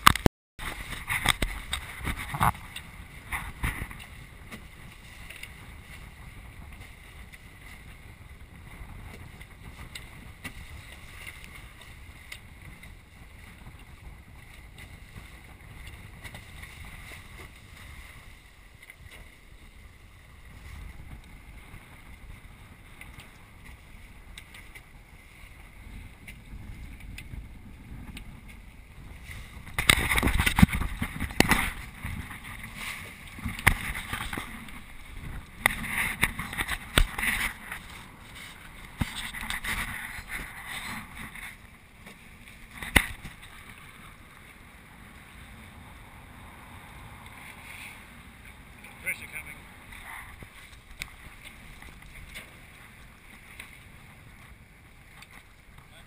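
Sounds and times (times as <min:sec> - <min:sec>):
wind noise: 0:00.0 - 0:44.3
water rushing along hulls: 0:00.0 - 0:56.0.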